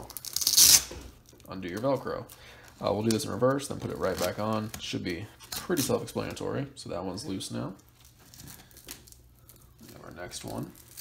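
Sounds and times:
velcro strap rustling: 0.0 - 1.0.

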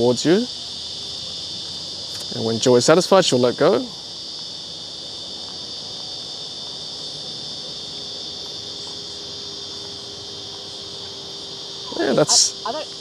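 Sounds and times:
high-pitched insect chorus: 0.0 - 13.0.

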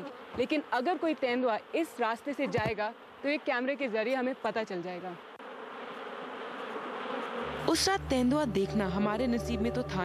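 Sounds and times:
night insects buzzing: 0.0 - 10.0.

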